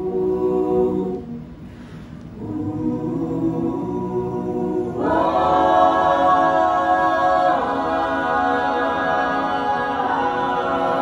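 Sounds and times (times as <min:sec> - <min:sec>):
vocal group singing harmony: 0:00.0 - 0:11.0.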